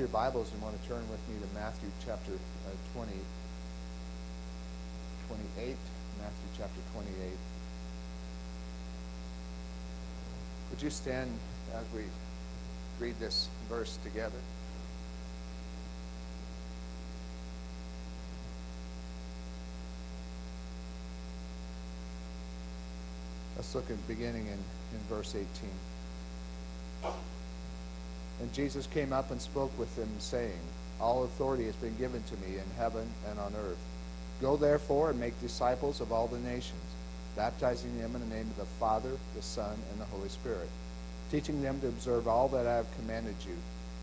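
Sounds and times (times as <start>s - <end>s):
electrical mains hum: 0.0s - 44.0s.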